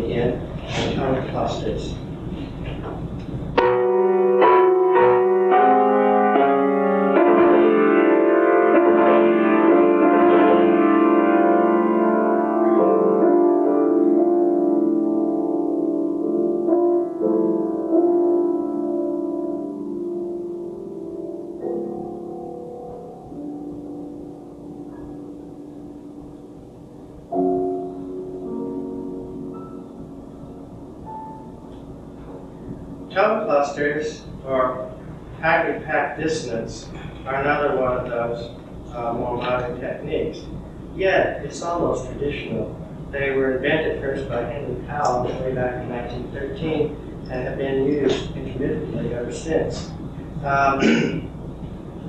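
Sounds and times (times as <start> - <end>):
piano chord ringing: 0.0 - 2.1, 3.0 - 51.3.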